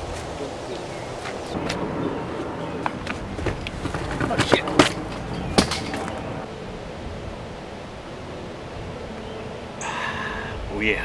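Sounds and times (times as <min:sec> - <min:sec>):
breeze through trees: 0:00.0 - 0:11.0.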